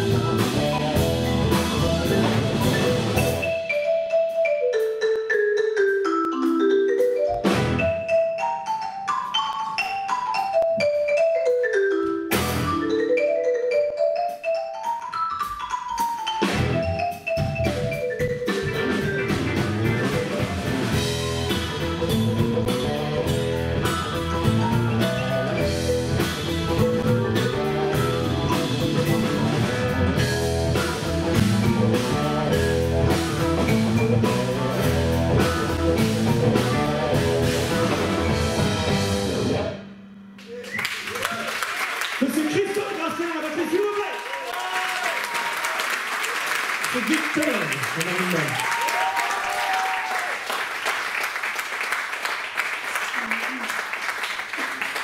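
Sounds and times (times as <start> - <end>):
marimba quick runs: 0.0 - 39.2
live band playing: 0.0 - 40.6, 46.8 - 49.2.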